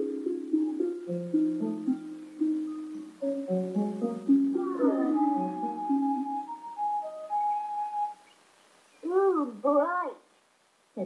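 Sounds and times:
cartoon music: 0.0 - 8.2
gliding voice-like sounds: 4.6 - 5.8.

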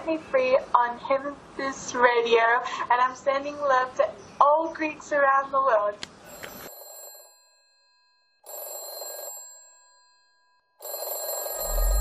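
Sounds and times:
bright ringing tone: 6.3 - 12.0
heavy bass and beat: 11.7 - 12.0.

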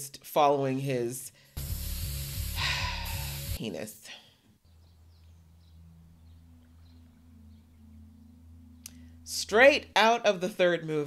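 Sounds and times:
somber music drone: 5.0 - 9.9.

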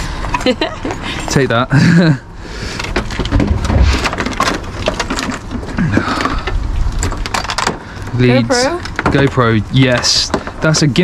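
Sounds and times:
cables and plastic rustling and clattering: 2.7 - 11.0.

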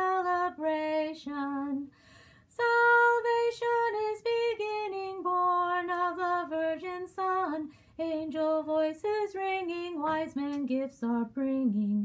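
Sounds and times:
woman singing a carol: 0.0 - 1.9, 2.5 - 12.0.

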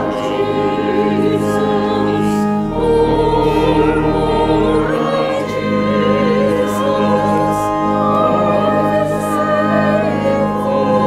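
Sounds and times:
choir and congregation singing hymn: 0.0 - 11.0
organ chords: 0.0 - 11.0
deep bass note: 2.6 - 6.2.

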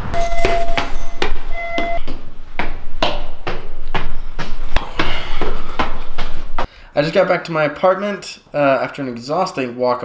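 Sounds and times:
short electronic beep: 0.0 - 2.0
footsteps climbing stairs: 0.1 - 6.7.

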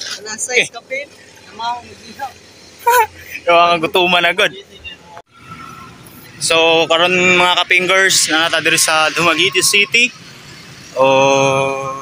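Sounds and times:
people talking: 0.0 - 5.2, 6.4 - 10.1, 11.0 - 12.0.

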